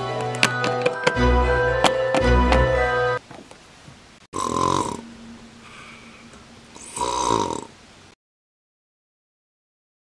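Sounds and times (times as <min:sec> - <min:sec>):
faint steady hum: 0:03.2 - 0:08.2
person imitating snoring: 0:04.4 - 0:05.0, 0:06.8 - 0:07.7.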